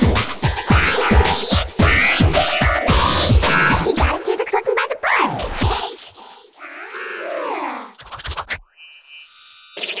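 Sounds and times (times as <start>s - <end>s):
distorted warbling music: 0.0s - 4.6s
fast stutter of clicks: 8.0s - 8.6s
high electronic tone with hiss: 8.7s - 10.0s.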